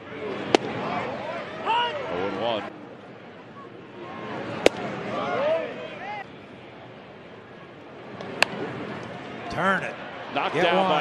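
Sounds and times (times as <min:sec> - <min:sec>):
crowd noise: 0:00.0 - 0:11.0
baseball smacking into mitt: 0:00.5 - 0:00.8, 0:04.6 - 0:04.9, 0:08.2 - 0:08.6.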